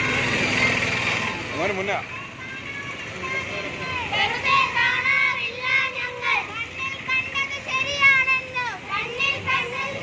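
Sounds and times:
street crowd murmur: 0.0 - 10.0
women and children chanting: 2.4 - 10.0.

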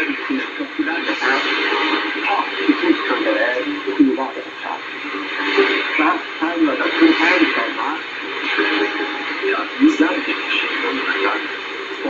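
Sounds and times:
radio voice talking: 0.0 - 12.0
shortwave radio hiss: 0.0 - 12.0.

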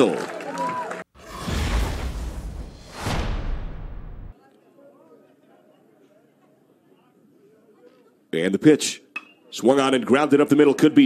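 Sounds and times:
heavy whooshing boom: 1.2 - 4.3
faint crowd murmur: 4.4 - 8.3.

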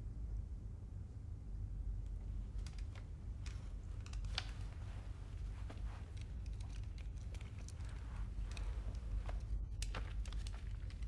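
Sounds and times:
low room rumble: 0.0 - 11.0
handling clicks and rustles: 2.1 - 11.0.

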